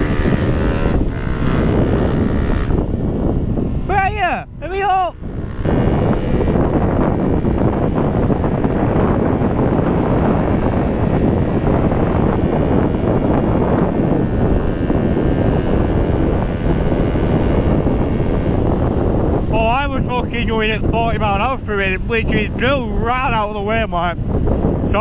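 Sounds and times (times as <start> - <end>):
motorcycle engine: 0.0 - 24.9
wind buffeting microphone: 0.0 - 25.0.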